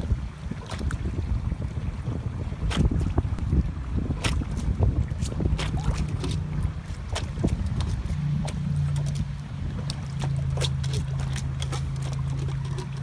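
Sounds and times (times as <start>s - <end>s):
low steady rumble: 0.0s - 13.0s
water spurting and splashing: 0.0s - 13.0s
dog snapping and lapping: 9.8s - 13.0s.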